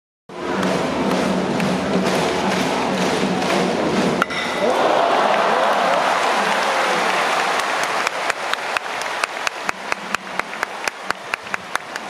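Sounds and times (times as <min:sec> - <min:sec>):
crowd noise: 0:00.3 - 0:12.0.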